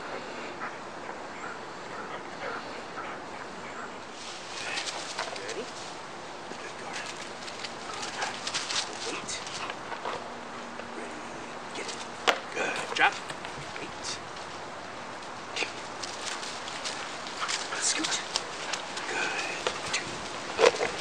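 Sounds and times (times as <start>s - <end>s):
footsteps crunching dry leaves: 4.0s - 10.8s, 11.8s - 21.0s.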